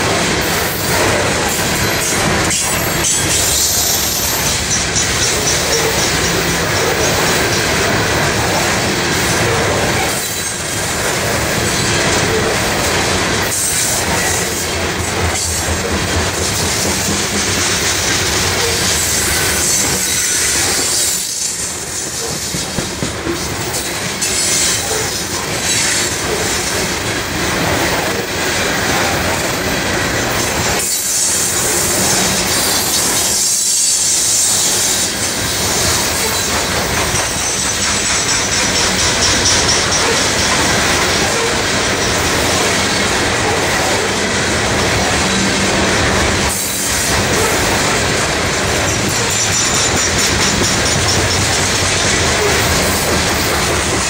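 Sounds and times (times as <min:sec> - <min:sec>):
train wheels rumbling and rattling: 0:00.0 - 0:54.0.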